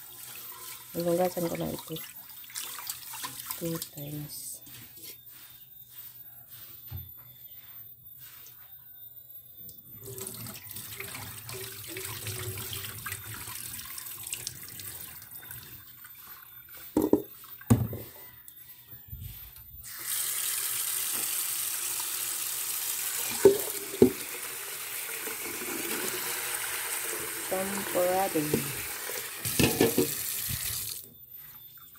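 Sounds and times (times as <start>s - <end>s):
tap water running into pot: 10.0s - 17.9s, 20.0s - 31.0s
pot knocking: 17.0s - 18.0s, 23.3s - 24.2s, 29.5s - 30.2s.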